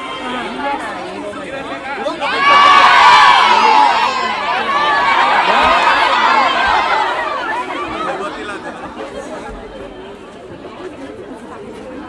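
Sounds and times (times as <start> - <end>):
crowd of women chattering: 0.0 - 12.0.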